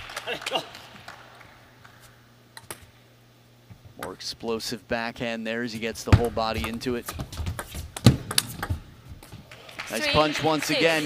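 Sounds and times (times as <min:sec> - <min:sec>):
table tennis ball clicks: 0:06.6 - 0:08.8.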